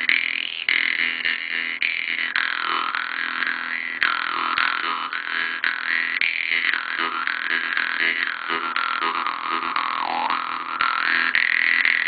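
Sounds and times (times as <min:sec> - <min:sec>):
jew's harp twanging drone: 0:00.0 - 0:12.0.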